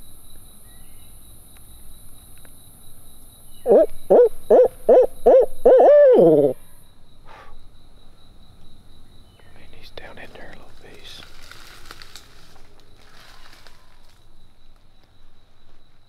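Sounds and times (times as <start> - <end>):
owl hooting: 3.6 - 6.7
faint rustling: 10.0 - 14.3.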